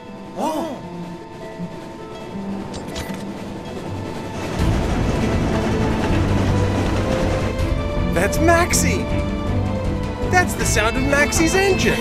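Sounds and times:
background music: 0.0s - 12.0s
train engine rumble: 0.0s - 12.0s.

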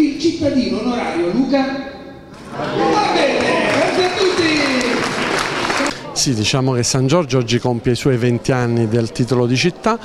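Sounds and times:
audience applauding: 2.5s - 6.1s.

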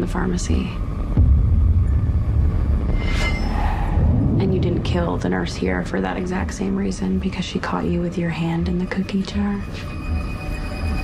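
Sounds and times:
low rumbling suspense score: 0.0s - 11.0s
hissing swell: 3.1s - 6.7s.

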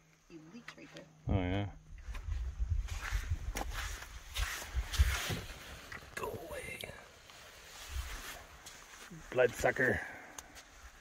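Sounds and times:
scuffs: 2.0s - 5.8s
footsteps on rocks: 2.0s - 6.1s.

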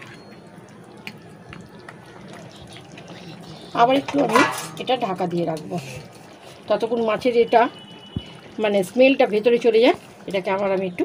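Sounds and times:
metal cookware clattering: 3.9s - 5.2s
pan lid being handled: 4.0s - 4.9s.

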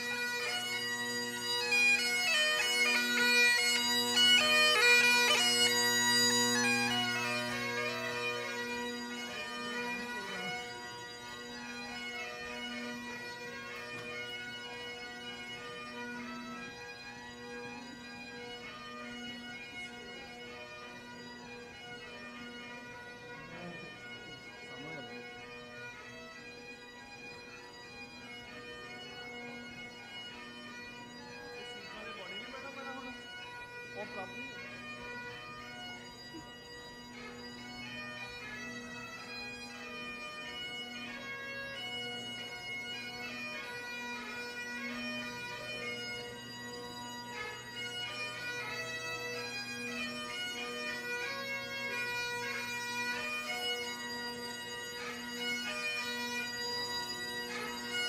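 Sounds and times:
bagpipes playing a tune: 0.0s - 58.0s.

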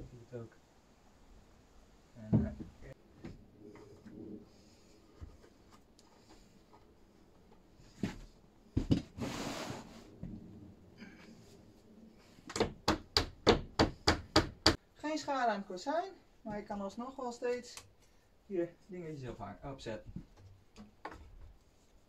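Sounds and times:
rustle: 9.2s - 10.4s
hammer knocking on wood: 12.5s - 14.8s.

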